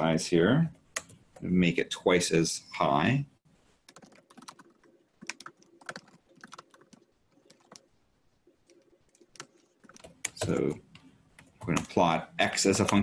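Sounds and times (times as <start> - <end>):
faint typing on a keyboard: 0.7 - 1.5, 3.8 - 13.0.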